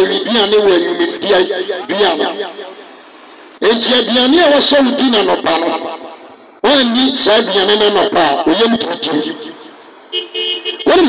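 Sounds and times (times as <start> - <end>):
amplified speech: 0.0 - 2.9, 3.6 - 9.8
vehicle horn toot: 10.1 - 11.0.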